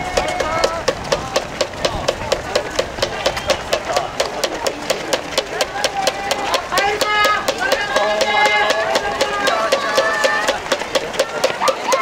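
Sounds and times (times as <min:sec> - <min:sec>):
running shoes slapping on asphalt: 0:00.0 - 0:12.0.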